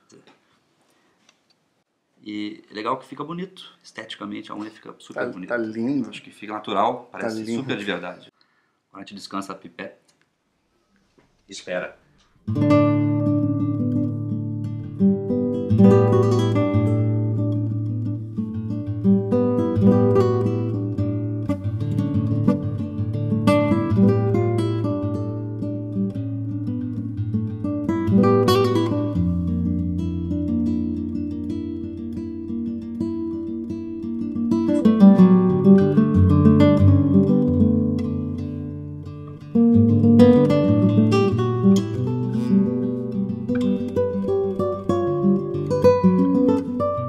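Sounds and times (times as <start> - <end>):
classical guitar fingerpicking: 12.4 - 47.0.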